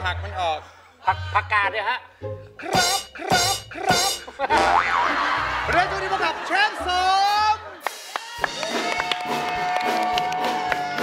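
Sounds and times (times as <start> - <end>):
music: 0.0 - 11.0
cartoon boing sound effect: 2.6 - 5.1.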